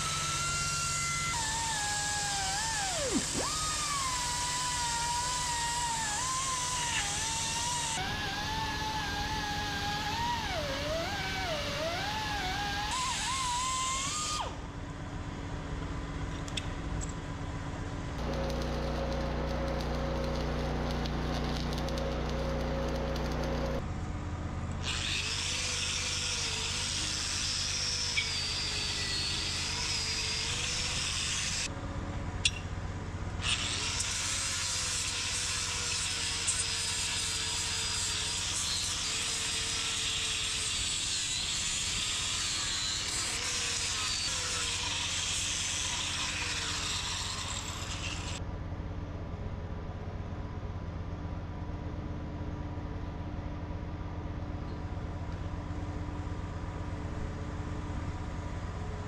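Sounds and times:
welding arc crackling and hissing: 0:00.0 - 0:14.4, 0:18.2 - 0:23.8, 0:33.6 - 0:48.4
machine hum: 0:14.4 - 0:24.8.

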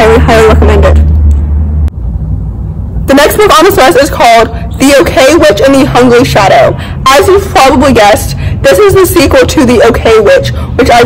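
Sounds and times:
faint background noise: 0:00.0 - 0:11.0
low outdoor rumble: 0:00.0 - 0:11.0.

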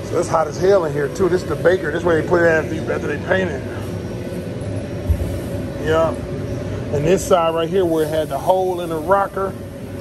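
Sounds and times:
machinery humming: 0:00.0 - 0:10.0.

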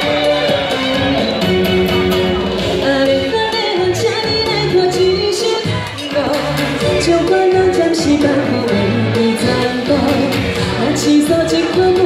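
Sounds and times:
instrumental accompaniment: 0:00.0 - 0:12.0
woman singing into a microphone: 0:02.6 - 0:12.0.

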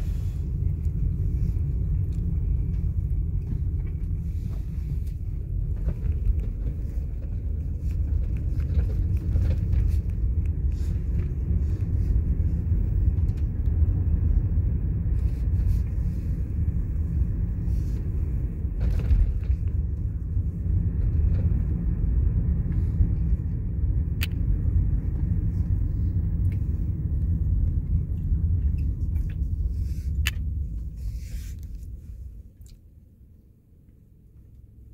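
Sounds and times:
road and engine rumble in car: 0:00.0 - 0:34.9.

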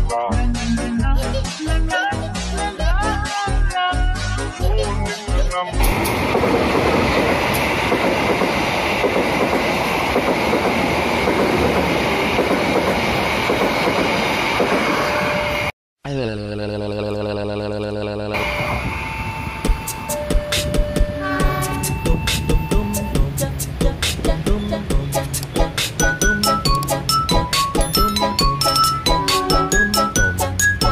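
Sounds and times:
train passing rumble: 0:05.8 - 0:15.7, 0:18.4 - 0:30.9
upbeat music with chiming notes: 0:19.3 - 0:23.2, 0:26.0 - 0:30.9
train horn: 0:21.1 - 0:23.1.

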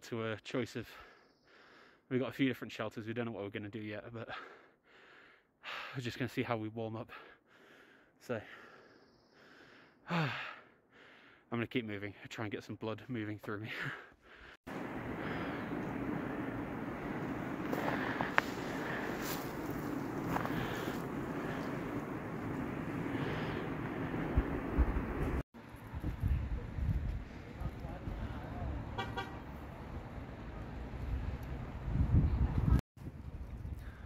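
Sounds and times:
wind rumble on microphone: 0:14.7 - 0:28.8, 0:29.8 - 0:34.0
outdoor rushing noise: 0:14.7 - 0:33.3
car horn toots: 0:29.0 - 0:29.5.

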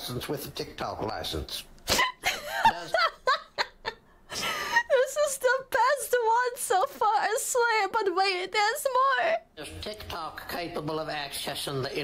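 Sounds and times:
woman laughing: 0:01.9 - 0:05.4.

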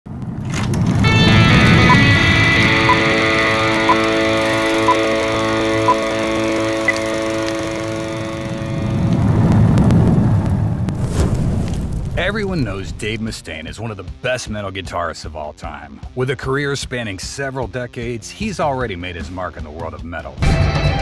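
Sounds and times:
low rumble: 0:00.1 - 0:14.0
sustained synth chord: 0:01.1 - 0:09.8.

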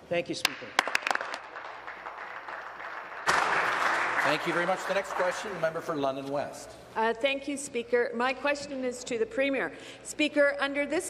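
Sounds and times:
people clapping: 0:00.4 - 0:06.3.

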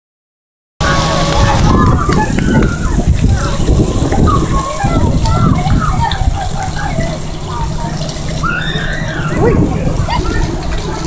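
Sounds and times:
children calling: 0:00.8 - 0:11.0
steady low rumble: 0:00.8 - 0:11.0
water running and splashing: 0:00.8 - 0:11.0.

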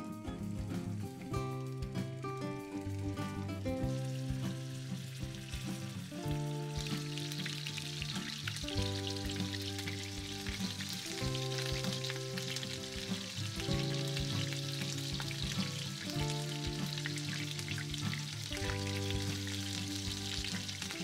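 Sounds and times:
patties sizzling in oil: 0:00.0 - 0:21.0
soft background music: 0:00.0 - 0:21.0.

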